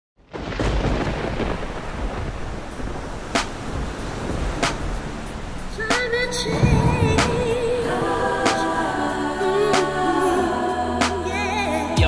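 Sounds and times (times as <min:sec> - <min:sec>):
sharp cracks: 0:00.3 - 0:03.7, 0:04.6 - 0:05.0
deep continuous rumbling: 0:02.3 - 0:09.6.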